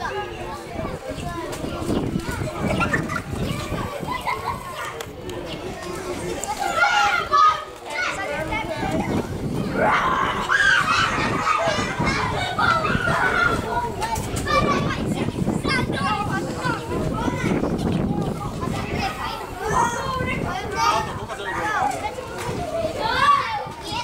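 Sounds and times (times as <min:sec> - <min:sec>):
children shouting during play: 0:06.4 - 0:24.0.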